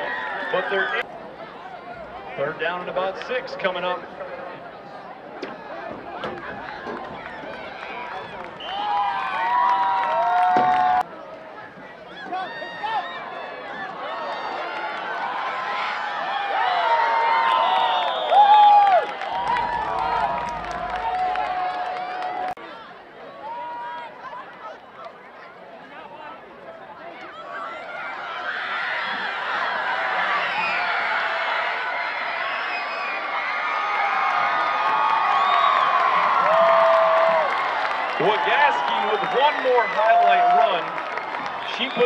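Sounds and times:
crowd shouting and cheering: 0:00.0 - 0:42.0.

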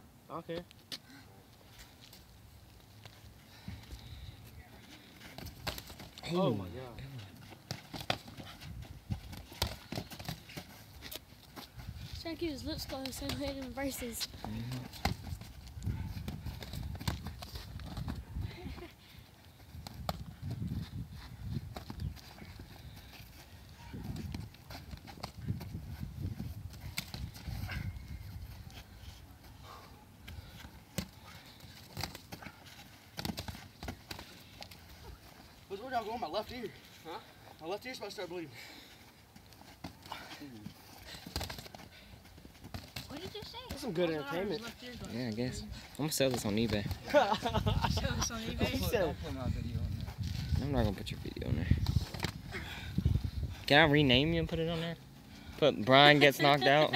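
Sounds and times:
scuffling: 0:00.9 - 0:37.6.

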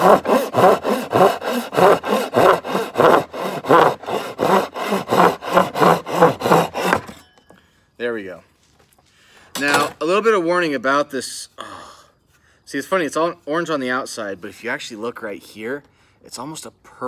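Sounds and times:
hand saw cutting wood: 0:00.0 - 0:07.2.

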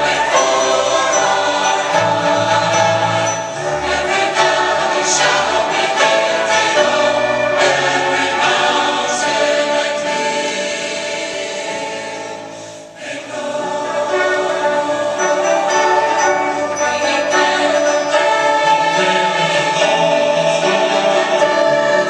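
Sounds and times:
church choir singing: 0:00.0 - 0:22.0
piano and instrumental accompaniment: 0:00.0 - 0:22.0.

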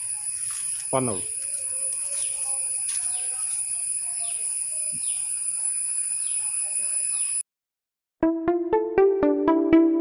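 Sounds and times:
faint scattered chirps: 0:00.0 - 0:07.4.

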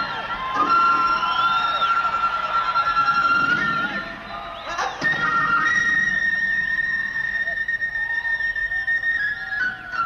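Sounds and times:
flute holding a high note: 0:00.0 - 0:10.0.

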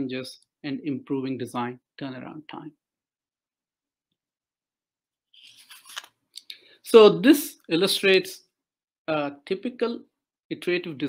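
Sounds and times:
man speaking: 0:00.0 - 0:02.8, 0:06.4 - 0:08.4, 0:09.1 - 0:11.0.

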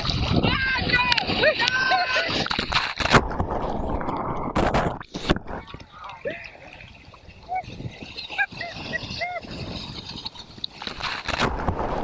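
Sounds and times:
surf washing: 0:00.0 - 0:12.0
wave breaking: 0:00.0 - 0:12.0.

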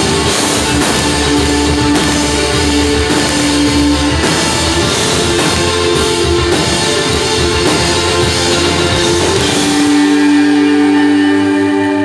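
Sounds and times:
people clapping: 0:00.0 - 0:10.5
drums: 0:00.0 - 0:12.0
electric guitars and bass chord: 0:00.0 - 0:12.0.

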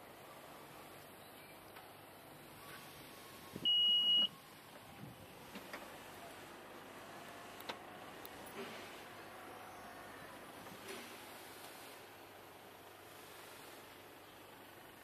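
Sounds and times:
electronic warning beep: 0:03.2 - 0:04.4.

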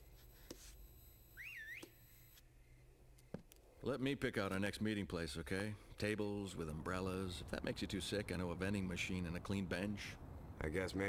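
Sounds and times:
short warbling whistle: 0:01.4 - 0:02.0.

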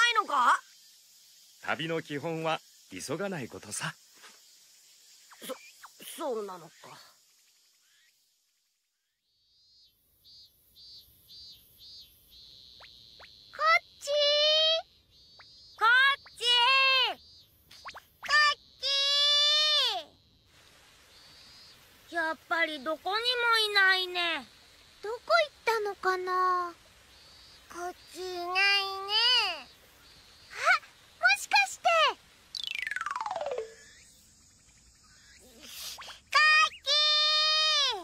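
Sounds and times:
cartoon whistle sliding down: 0:32.6 - 0:33.9.

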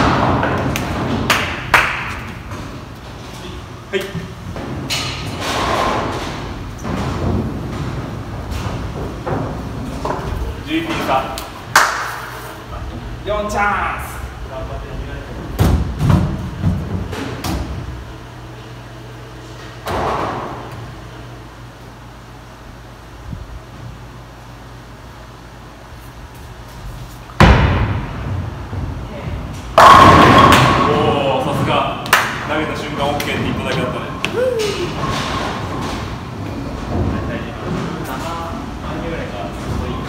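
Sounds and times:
bowling ball thud on lane: 0:29.8 - 0:31.0
ball crashing into pins: 0:29.8 - 0:31.1.

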